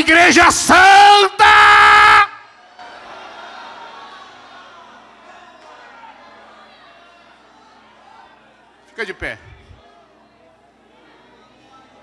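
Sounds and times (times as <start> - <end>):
man shouting through pa: 0.0 - 2.4
faint congregation murmur: 2.5 - 12.0.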